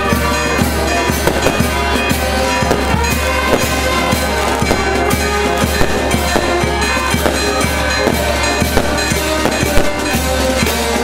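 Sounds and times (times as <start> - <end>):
brass band playing: 0.0 - 11.0
firecrackers popping and banging: 0.0 - 11.0.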